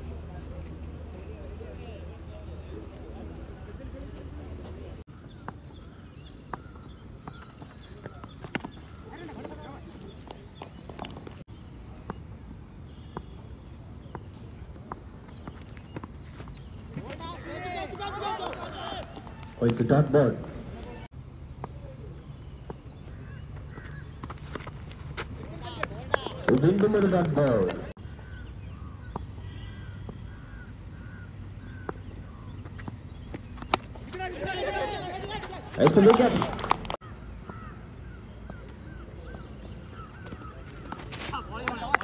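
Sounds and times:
distant voices of players: 0:00.0 - 0:42.0
footfalls on dirt: 0:22.8 - 0:27.9, 0:38.4 - 0:42.0.

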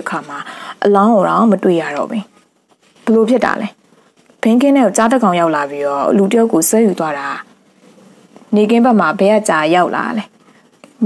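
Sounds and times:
narrator speaking: 0:03.0 - 0:03.8, 0:04.4 - 0:07.5.

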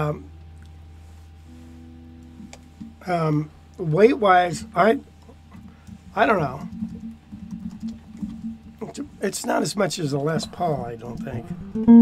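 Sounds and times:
low steady hum: 0:00.0 - 0:12.0
electric guitar strings ringing: 0:10.1 - 0:12.0.

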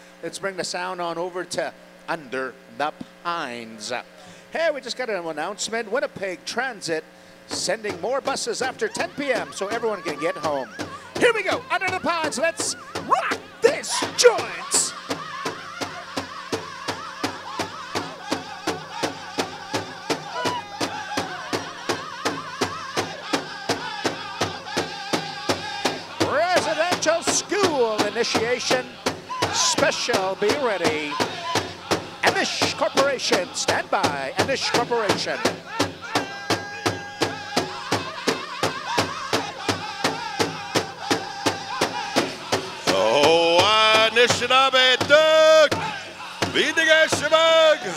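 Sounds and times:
big drum beating: 0:07.5 - 0:47.9
high-pitched group singing: 0:09.1 - 0:47.9
voice holding high note: 0:12.7 - 0:14.9.

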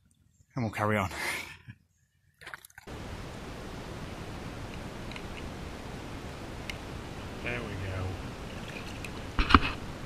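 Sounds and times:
steady hiss: 0:02.9 - 0:10.0
faint ticks: 0:06.6 - 0:06.8
faint rustle: 0:08.1 - 0:10.0.

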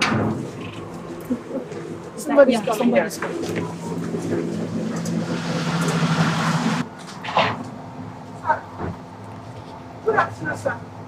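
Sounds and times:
engine hum: 0:00.0 - 0:11.0
rush of noise: 0:03.0 - 0:06.9.

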